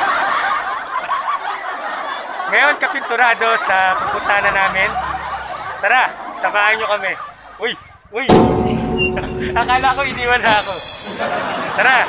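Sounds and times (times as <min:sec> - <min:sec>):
group of people laughing: 0:00.0 - 0:12.0.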